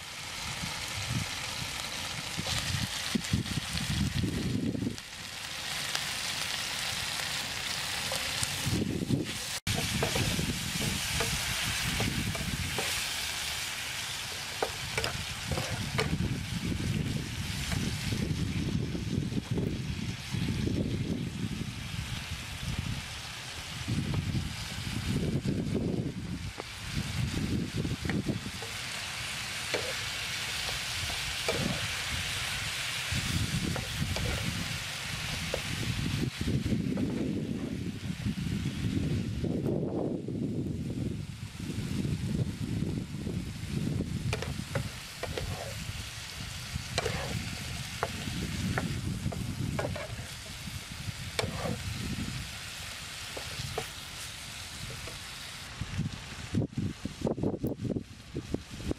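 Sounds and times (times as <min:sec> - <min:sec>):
food sizzling in a frying pan: 0:00.0 - 0:58.9
spatula scraping and clicking on pan: 0:09.3 - 0:13.1, 0:14.3 - 0:16.2, 0:29.7 - 0:31.9, 0:33.7 - 0:34.6, 0:44.3 - 0:45.8, 0:46.9 - 0:50.6, 0:51.4 - 0:51.8.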